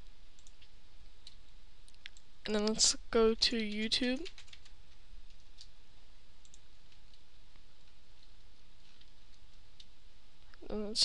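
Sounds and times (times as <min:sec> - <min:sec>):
low hum and hiss: 0:00.0 - 0:11.0
computer mouse clicks: 0:00.4 - 0:02.7, 0:06.4 - 0:07.2.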